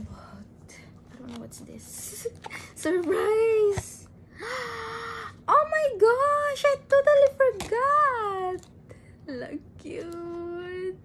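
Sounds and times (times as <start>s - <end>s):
woman talking: 0.0s - 4.1s, 5.4s - 11.0s.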